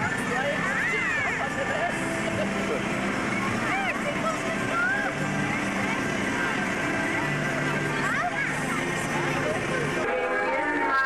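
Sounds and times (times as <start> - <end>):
indistinct voices: 0.0 - 11.0
music: 0.0 - 11.0
vehicle engine running: 0.0 - 11.0.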